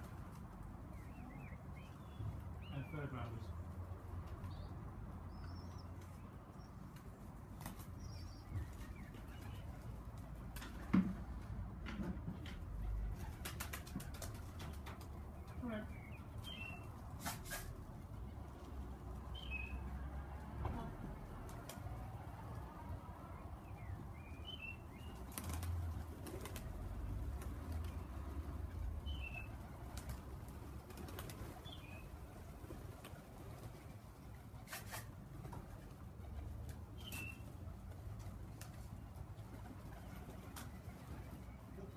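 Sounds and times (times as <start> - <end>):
pigeon wings flapping and clapping: 8.7 - 15.3, 25.1 - 28.7, 29.3 - 34.0, 37.9 - 41.5.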